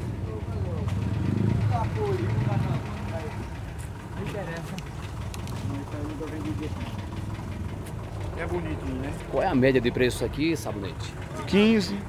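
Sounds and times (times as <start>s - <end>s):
distant voices talking: 0.0s - 12.0s
low engine-like rumble: 0.0s - 12.0s.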